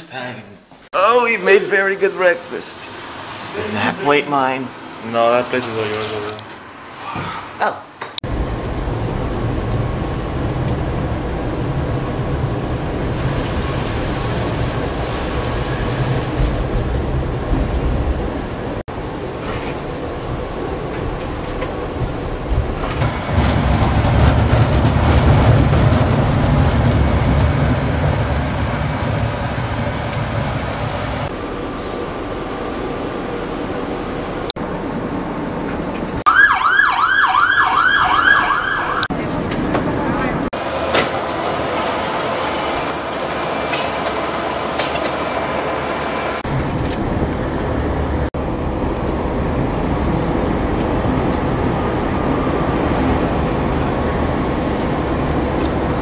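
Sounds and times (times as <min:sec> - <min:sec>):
tram running rumble: 0:08.2 - 0:36.2, 0:39.0 - 0:56.0
emergency siren wailing: 0:36.2 - 0:39.1.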